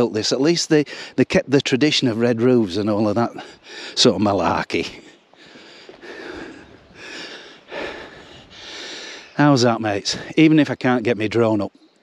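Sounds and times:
man breathing hard: 0:00.9 - 0:01.2, 0:03.3 - 0:04.0, 0:04.9 - 0:09.4.

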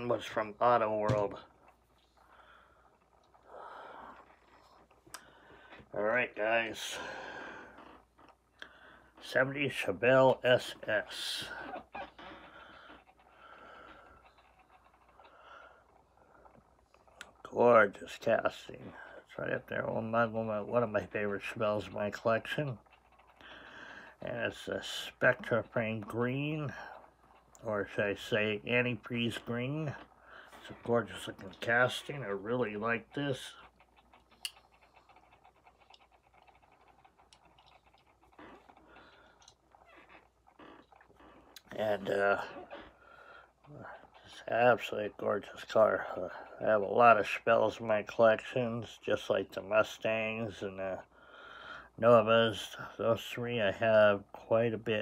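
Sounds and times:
faint breathing close to microphone: 0:02.0 - 0:06.0, 0:06.8 - 0:09.2, 0:11.4 - 0:17.1, 0:22.9 - 0:24.3, 0:30.0 - 0:31.6, 0:42.4 - 0:44.4, 0:51.0 - 0:52.0.

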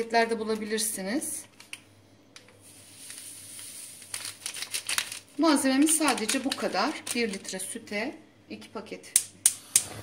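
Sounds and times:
powder packet crinkling: 0:01.4 - 0:07.8.

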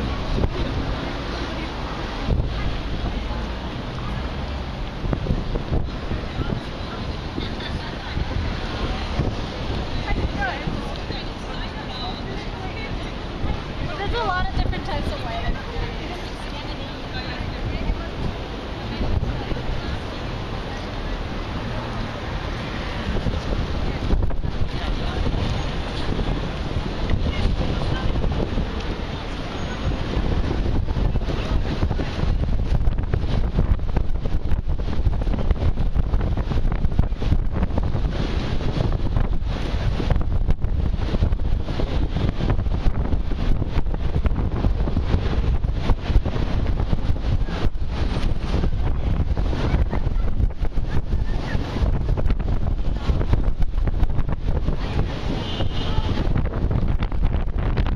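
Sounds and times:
busy pedestrian street: 0:00.0 - 0:57.9
wind noise on microphone: 0:00.0 - 0:57.9.

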